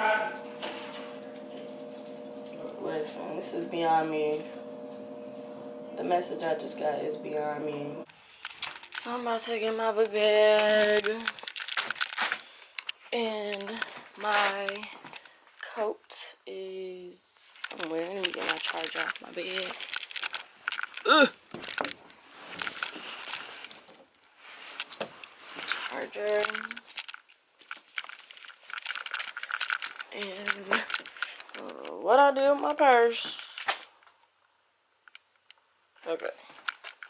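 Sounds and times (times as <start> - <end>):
rustling and clicking of handling: 8.1 - 15.8, 17.4 - 34.3, 35.0 - 37.0.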